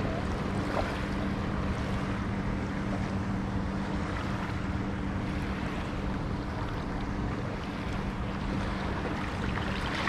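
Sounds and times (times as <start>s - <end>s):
motorboat engine humming: 0.0s - 10.0s
water noise: 0.0s - 10.0s
wind: 0.0s - 10.0s.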